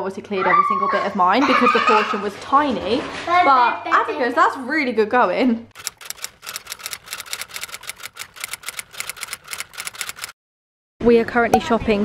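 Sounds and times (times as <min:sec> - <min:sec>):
typewriter key clicks: 0:05.8 - 0:10.3.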